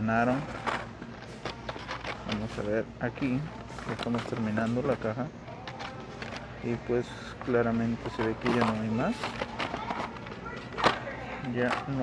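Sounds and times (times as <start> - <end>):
toy packages handled in cardboard box: 0.2 - 5.0, 7.3 - 10.2.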